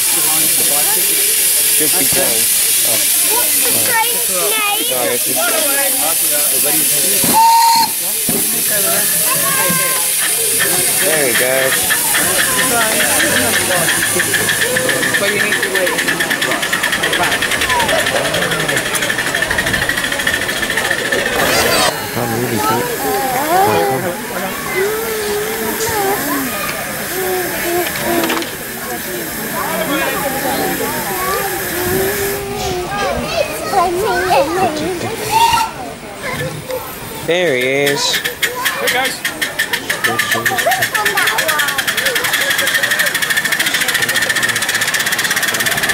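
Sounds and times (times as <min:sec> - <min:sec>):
steam venting hiss: 0:00.0 - 0:35.8
people chattering: 0:00.0 - 0:45.9.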